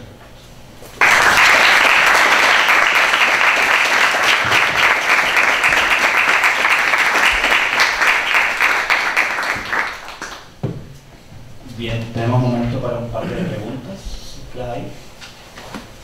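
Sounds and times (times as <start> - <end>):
audience applauding: 1.0 - 10.6.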